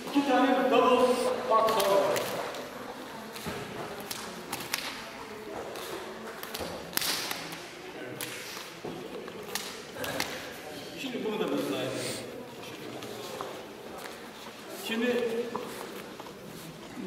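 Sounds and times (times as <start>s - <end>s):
slaps of forearms and hands: 1.6s - 2.6s, 3.3s - 5.0s, 5.8s - 8.8s, 9.4s - 10.5s.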